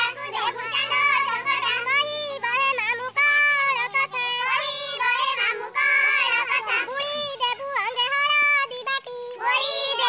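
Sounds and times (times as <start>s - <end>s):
woman singing: 0.0s - 10.0s.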